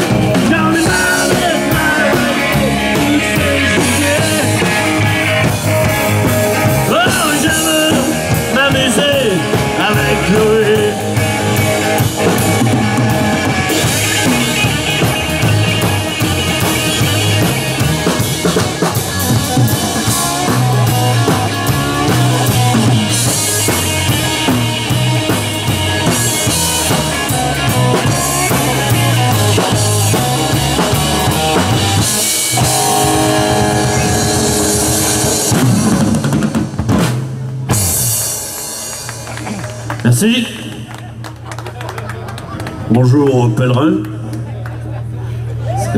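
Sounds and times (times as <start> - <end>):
drum kit: 0.0 - 40.0
electric guitar: 0.0 - 41.3
bass guitar: 0.0 - 41.5.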